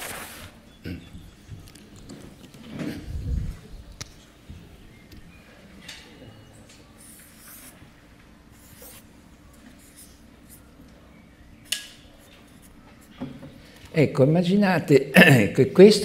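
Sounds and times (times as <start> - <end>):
marker rubbing on paper: 7.0 - 7.9, 8.6 - 9.1.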